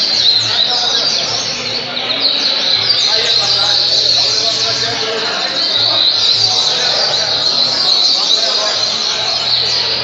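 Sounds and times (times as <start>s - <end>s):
bird singing high notes: 0.0s - 10.0s.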